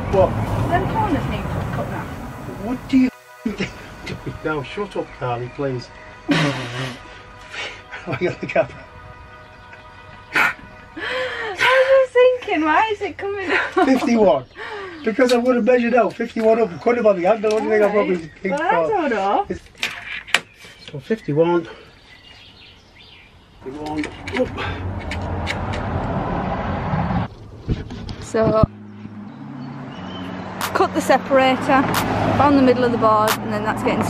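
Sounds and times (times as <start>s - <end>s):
faint background music: 0.0s - 19.6s.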